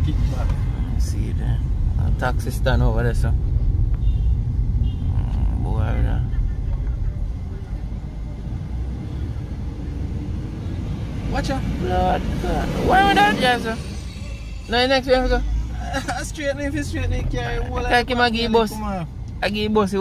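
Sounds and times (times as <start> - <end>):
car engine and tyres rumbling: 0.0 - 20.0
people speaking: 5.2 - 7.8, 11.3 - 13.9, 14.7 - 20.0.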